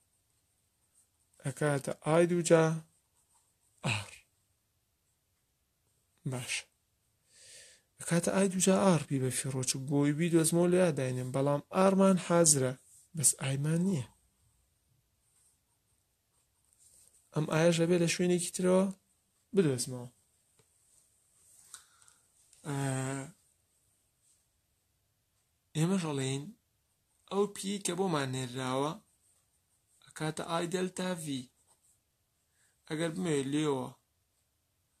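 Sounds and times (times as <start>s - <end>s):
man speaking: 1.4s - 2.9s, 3.8s - 4.3s, 6.2s - 6.7s, 8.0s - 14.2s, 17.3s - 20.2s, 22.6s - 23.4s, 25.7s - 26.6s, 27.3s - 29.1s, 30.0s - 31.6s, 32.8s - 34.0s.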